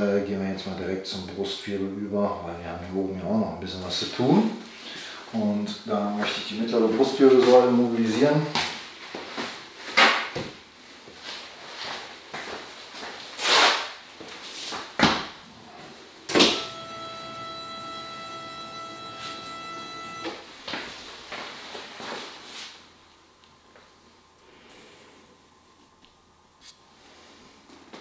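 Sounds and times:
steady electric whine: 16.2 - 21.4.

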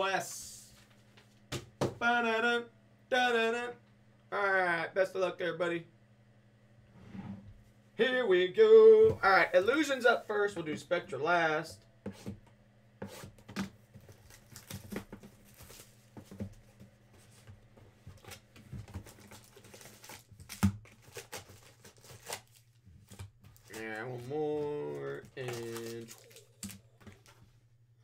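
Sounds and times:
plastic wrap crinkling and tearing: 14.0 - 16.0, 18.2 - 27.4.

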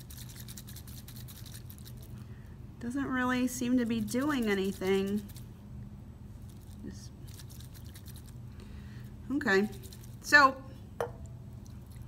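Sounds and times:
low steady room hum: 0.0 - 12.0
woman speaking: 2.8 - 5.2, 9.3 - 10.7.

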